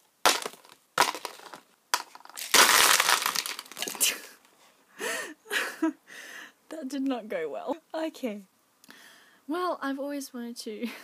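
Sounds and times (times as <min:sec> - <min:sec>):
plastic items clattering on table: 0:00.3 - 0:04.3.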